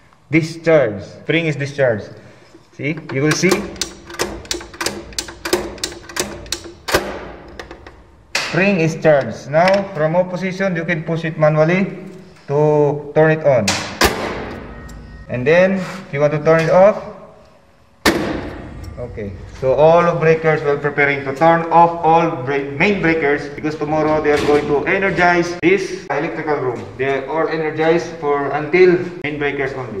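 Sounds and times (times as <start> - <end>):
circuit breaker ratcheting clicks: 3.0 - 9.8
loud spring click: 3.1 - 8.8.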